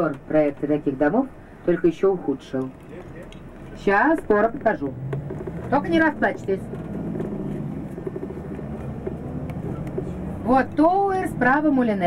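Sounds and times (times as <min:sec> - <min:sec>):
bus engine and road noise: 0:00.0 - 0:12.0.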